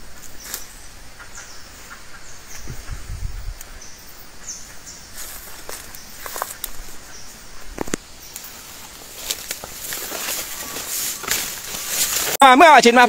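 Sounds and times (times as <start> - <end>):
birds chirping: 0.0 - 13.0
leaves rustling: 0.0 - 13.0
twigs snapping: 5.3 - 6.9, 7.7 - 12.4.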